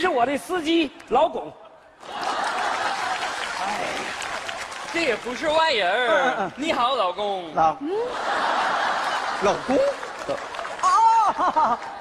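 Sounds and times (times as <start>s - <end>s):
audience applauding: 2.0s - 6.2s, 8.3s - 12.0s.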